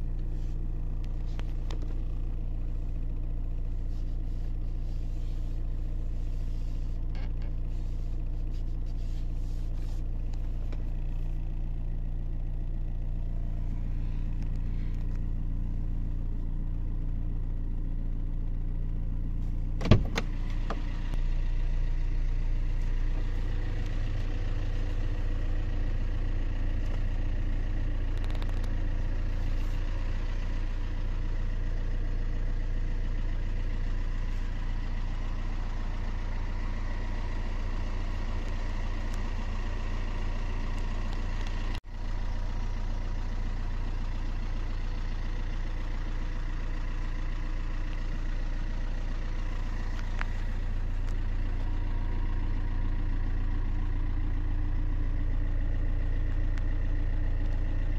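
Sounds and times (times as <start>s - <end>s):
car engine idling: 0.0s - 57.9s.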